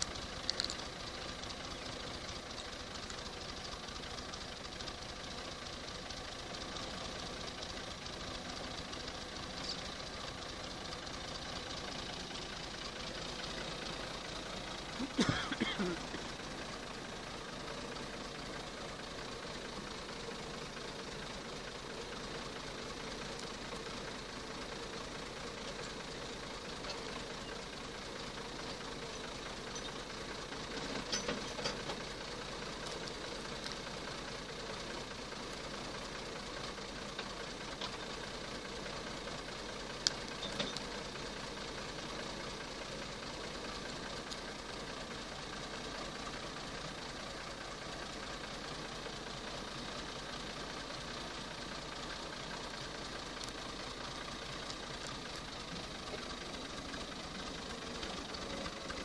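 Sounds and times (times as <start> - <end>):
tractor diesel engine idling: 0.0 - 59.0.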